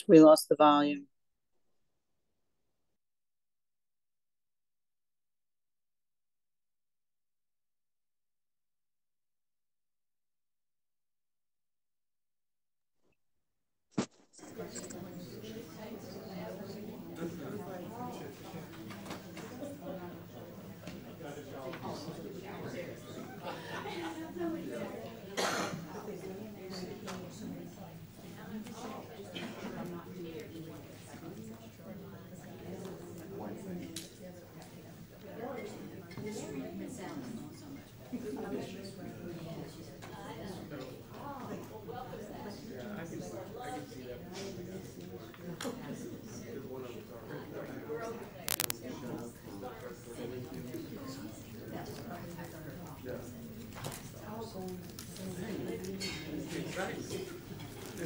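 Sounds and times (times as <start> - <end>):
people chatting: 0.0 - 1.0, 14.4 - 58.0
short cough: 25.4 - 25.8.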